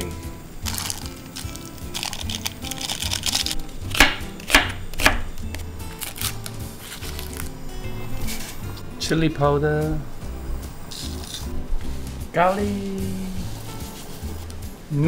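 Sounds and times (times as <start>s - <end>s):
background music with beat: 0.0s - 15.0s
knife cutting onion on board: 3.8s - 6.3s.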